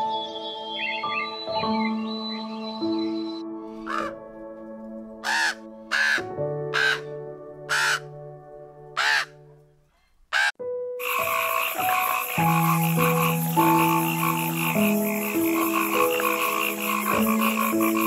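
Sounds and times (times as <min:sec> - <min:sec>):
background music with held notes: 0:00.0 - 0:18.0
crow cawing: 0:03.8 - 0:04.2, 0:05.2 - 0:08.1, 0:09.0 - 0:09.4, 0:10.3 - 0:18.0
frog croaking: 0:03.9 - 0:04.2, 0:05.2 - 0:07.1, 0:07.7 - 0:08.1, 0:09.0 - 0:09.3, 0:10.3 - 0:18.0.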